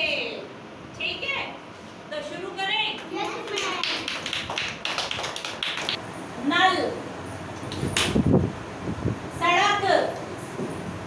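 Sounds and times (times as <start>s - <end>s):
people clapping hands: 3.0s - 6.0s, 7.6s - 8.2s.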